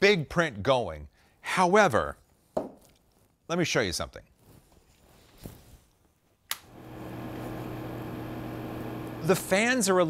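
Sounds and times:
sharp click: 6.5s - 6.7s
cooling fans whooshing and humming: 6.7s - 10.0s.

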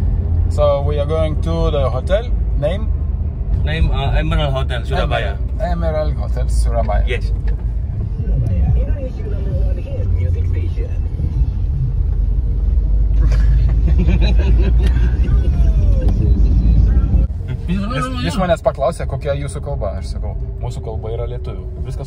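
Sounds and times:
car road and engine rumble: 0.0s - 22.0s.

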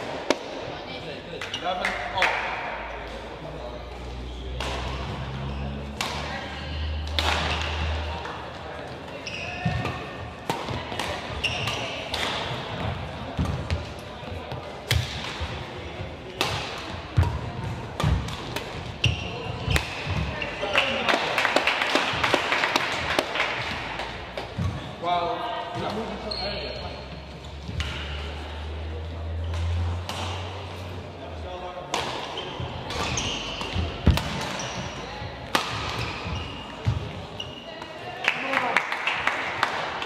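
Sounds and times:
shoes squeaking on court: 8.9s - 10.2s, 11.3s - 13.8s, 18.6s - 20.6s, 25.8s - 28.2s, 32.1s - 37.9s
racket striking shuttlecock: 35.5s - 36.3s.

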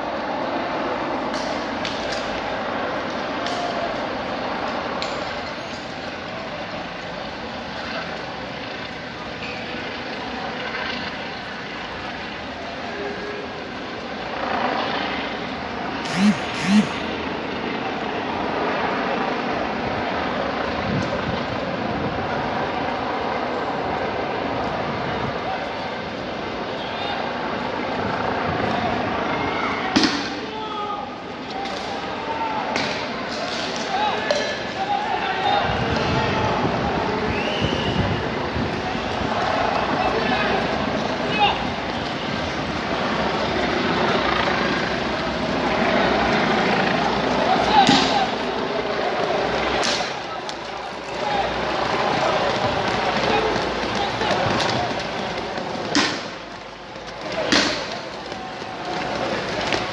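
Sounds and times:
distant voices and shouts: 16.0s - 17.2s, 28.6s - 42.3s, 46.8s - 59.9s.

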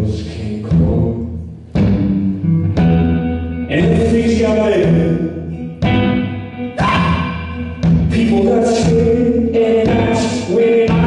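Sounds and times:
deep drum hits: 0.7s - 4.2s
guitar playing chords: 1.3s - 11.0s.

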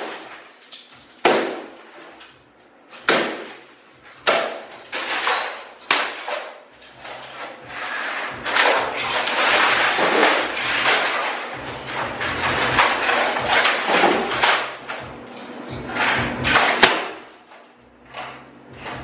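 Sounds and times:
metal bar smashing electronics: 0.0s - 2.2s, 2.9s - 19.0s.

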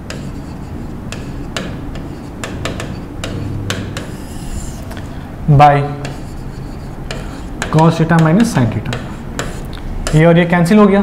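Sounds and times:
pen tapping on glass board: 0.0s - 4.7s, 6.0s - 10.3s
room noise: 0.0s - 11.0s.

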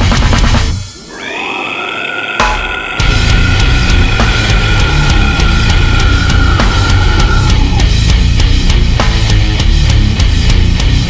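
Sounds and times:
metal band playing: 0.0s - 11.0s
sustained note sliding up: 0.9s - 8.0s.

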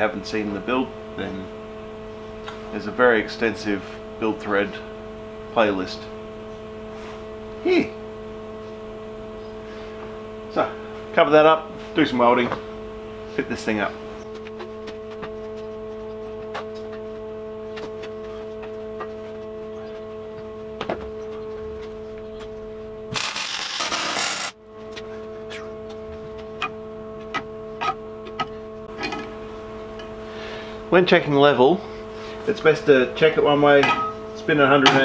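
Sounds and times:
steady electrical hum: 0.0s - 35.0s.

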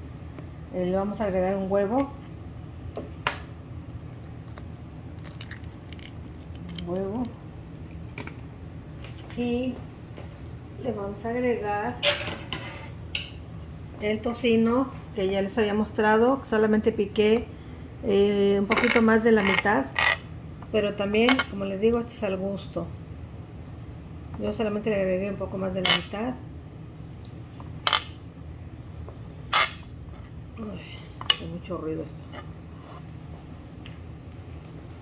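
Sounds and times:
steady low hum: 0.0s - 35.0s.

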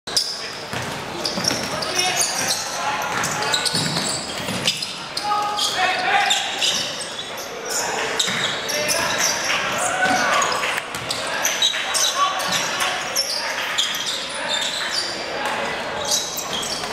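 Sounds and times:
players calling out: 0.2s - 16.9s
basketball bouncing on hardwood floor: 0.7s - 1.8s.

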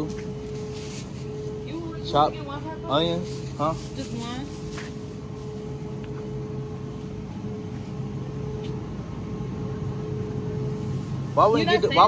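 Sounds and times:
constant mid-pitched tone: 0.0s - 12.0s.

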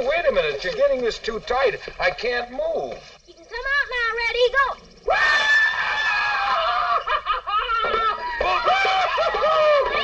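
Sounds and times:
people whooping and shrieking: 5.1s - 10.0s.

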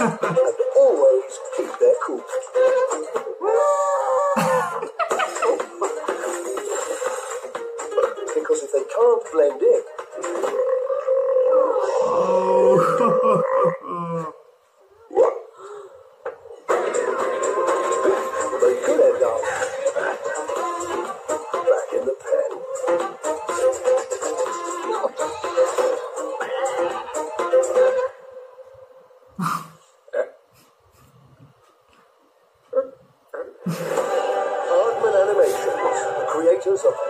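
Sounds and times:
music: 0.0s - 13.4s, 16.2s - 29.2s, 33.7s - 37.0s.

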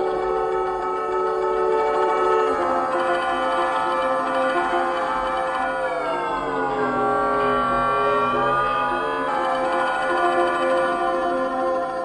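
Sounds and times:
piano with electronic tones: 0.0s - 12.0s.

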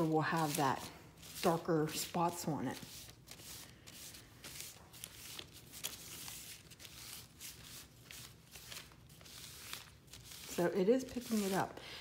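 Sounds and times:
paper towel rustling and scrubbing: 0.0s - 11.8s.

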